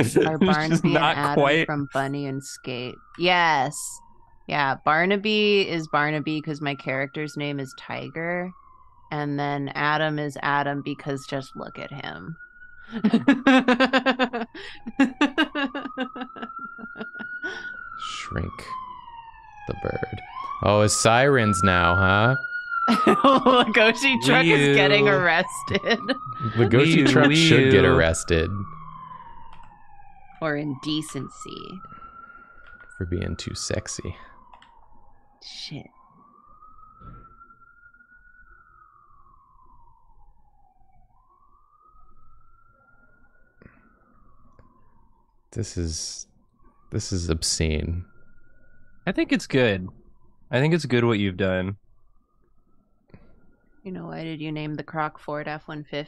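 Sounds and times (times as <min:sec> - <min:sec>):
emergency vehicle siren wailing: 0:00.0 - 0:46.2, 0:46.8 - 0:51.8.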